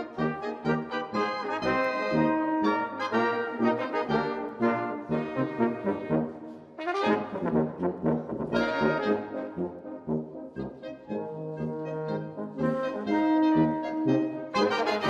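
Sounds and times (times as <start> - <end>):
brass band playing a tune: 0.0 - 15.0.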